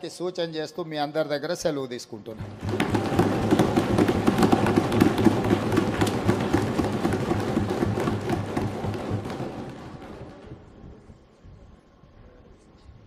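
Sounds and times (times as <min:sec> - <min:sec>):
audience applause: 0:02.4 - 0:10.8.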